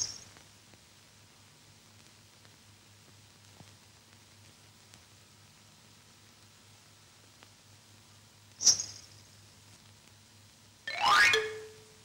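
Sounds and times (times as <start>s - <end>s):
rising musical glide: 10.9s - 11.8s.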